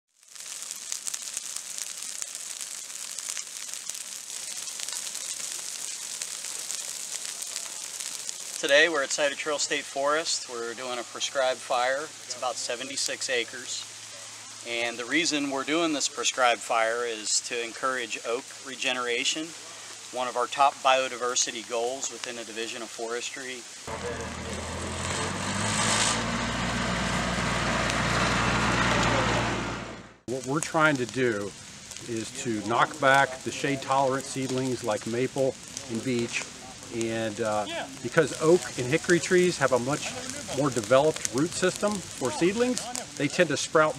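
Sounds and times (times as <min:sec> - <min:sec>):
fire crackling in dry leaves: 0:00.1 - 0:43.9
vehicle engine hum: 0:23.9 - 0:30.2.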